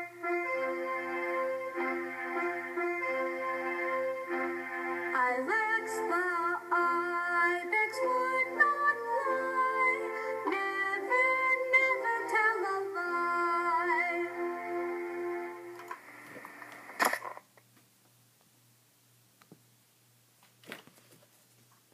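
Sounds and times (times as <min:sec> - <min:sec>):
background music: 0:00.0 - 0:16.1.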